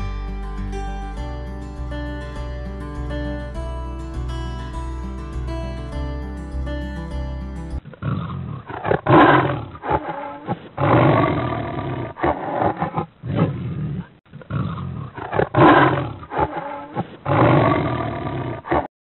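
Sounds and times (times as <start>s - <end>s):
tiger roaring: 7.9s - 18.9s.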